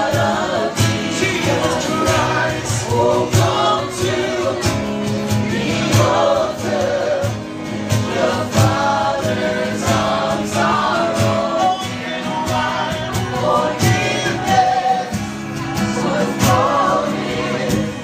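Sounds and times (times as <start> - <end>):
backing singers: 0.0 - 18.0
band playing steady beat: 0.0 - 18.0
man singing lead: 0.0 - 18.0.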